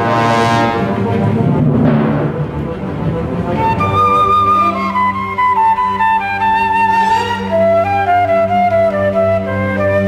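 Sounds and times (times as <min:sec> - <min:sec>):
symphony orchestra playing chords: 0:00.0 - 0:10.0.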